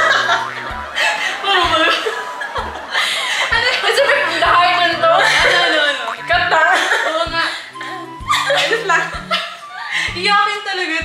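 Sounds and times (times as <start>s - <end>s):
women laughing: 0.0s - 10.4s
women speaking: 1.2s - 2.2s, 3.5s - 11.0s.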